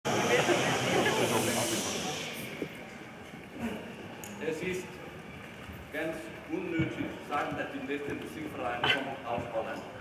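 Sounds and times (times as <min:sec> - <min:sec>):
audience noise in a hall: 0:00.0 - 0:10.0.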